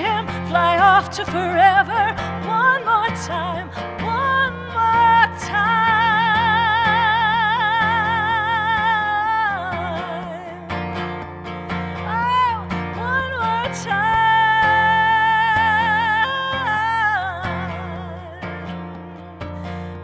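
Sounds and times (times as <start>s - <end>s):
woman singing: 0.0s - 19.4s
strummed acoustic guitar: 0.0s - 20.0s.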